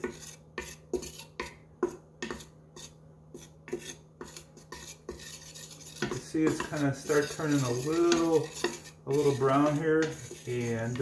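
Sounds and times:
wooden spatula scraping a pot: 0.0s - 11.0s.

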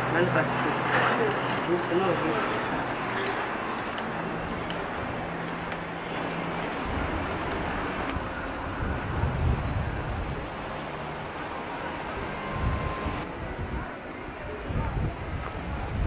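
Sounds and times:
steady background hiss: 0.0s - 16.0s
wind buffeting microphone: 0.0s - 16.0s.

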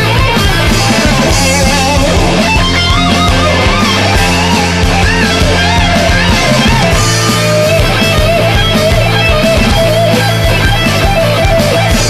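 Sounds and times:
bass: 0.0s - 12.0s
drums keeping a steady beat: 0.0s - 12.0s
electric guitars: 0.0s - 12.0s.

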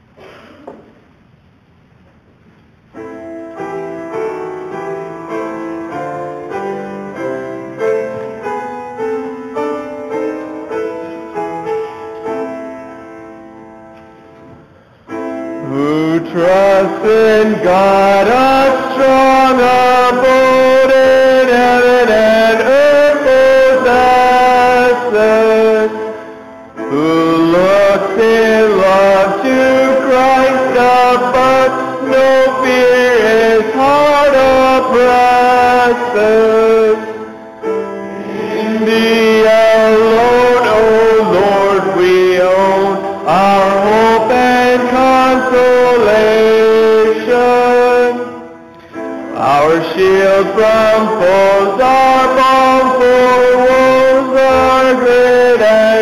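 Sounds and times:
congregation singing in unison: 15.6s - 56.0s.

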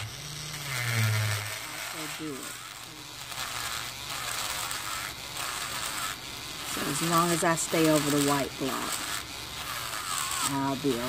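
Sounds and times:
nail drill grinding: 0.0s - 11.0s.

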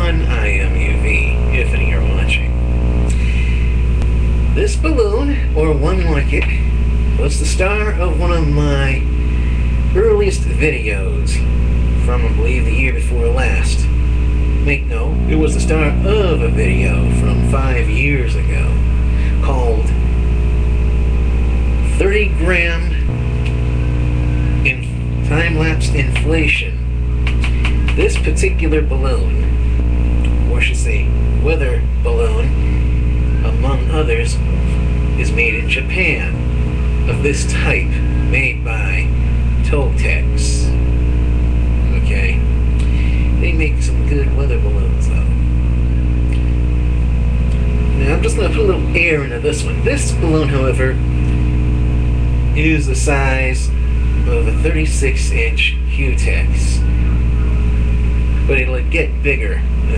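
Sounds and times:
loud low buzzy hum: 0.0s - 59.9s.

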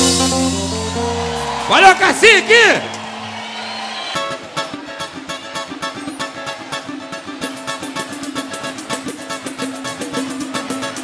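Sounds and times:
hand percussion: 7.3s - 11.0s.

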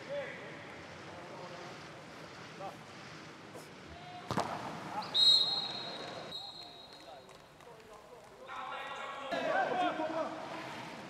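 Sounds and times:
sharp smack: 4.3s - 4.7s
referee's whistle blast: 5.0s - 6.9s.

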